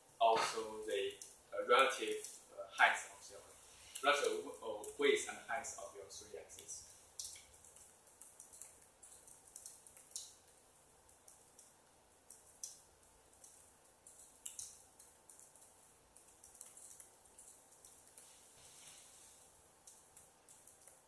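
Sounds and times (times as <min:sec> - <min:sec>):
soft irregular clicks: 0:01.1 - 0:01.4, 0:06.5 - 0:18.4, 0:19.3 - 0:21.0.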